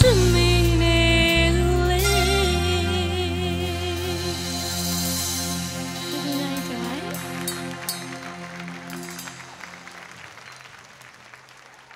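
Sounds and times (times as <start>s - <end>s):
band playing sustained chord: 0.0s - 10.3s
audience applause: 6.1s - 11.9s.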